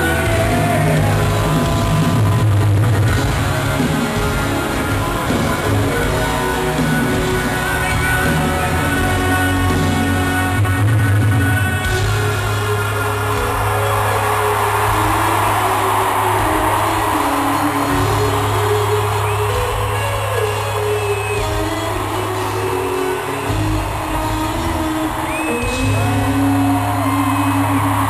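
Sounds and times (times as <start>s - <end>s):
crowd cheering: 0.0s - 28.0s
live rock band playing: 0.0s - 28.0s.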